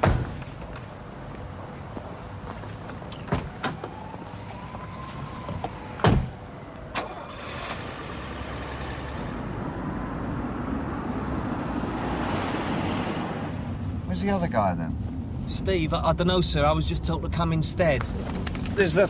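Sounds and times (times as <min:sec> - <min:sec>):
car door slamming: 0:06.0 - 0:06.4
car driving off: 0:06.9 - 0:13.9.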